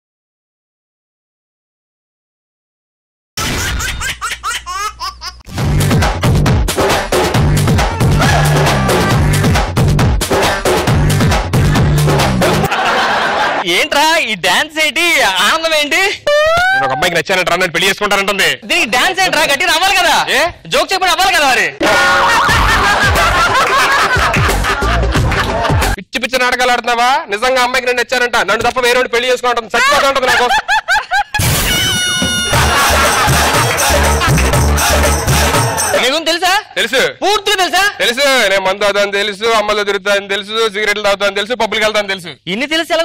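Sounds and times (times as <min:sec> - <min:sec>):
upbeat electronic music: 0:05.5 - 0:12.7, 0:24.1 - 0:26.0, 0:31.8 - 0:36.1
high laughter sound effect: 0:21.8 - 0:26.0, 0:30.3 - 0:34.6.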